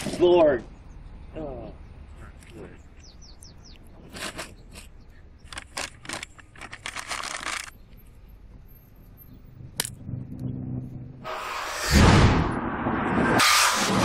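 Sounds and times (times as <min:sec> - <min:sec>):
paper crinkling and rustling: 0:04.0 - 0:07.7
low hum: 0:08.9 - 0:14.0.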